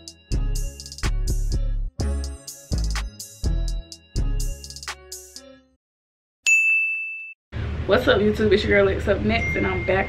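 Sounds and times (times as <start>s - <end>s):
bell-like ding: 6.5s - 7.4s, 9.3s - 10.0s
woman talking: 7.9s - 10.0s.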